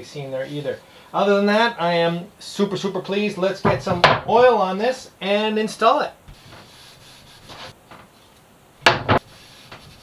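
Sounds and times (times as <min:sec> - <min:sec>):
scratchy wiping on wood: 0:06.3 - 0:07.8, 0:09.2 - 0:10.0.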